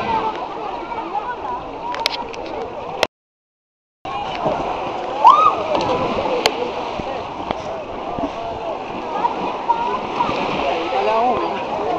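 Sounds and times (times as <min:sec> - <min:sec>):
people talking and calling: 0:00.0 - 0:03.1, 0:04.1 - 0:11.9
sea water splashing: 0:04.1 - 0:11.9.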